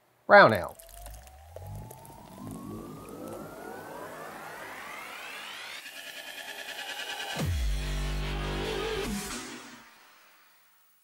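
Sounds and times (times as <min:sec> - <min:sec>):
synthesized rising sweep: 0:00.8 - 0:09.7.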